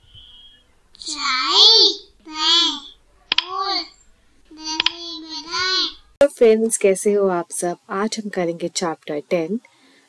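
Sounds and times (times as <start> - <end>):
sharp click: 3.3 - 3.6, 4.8 - 5.0.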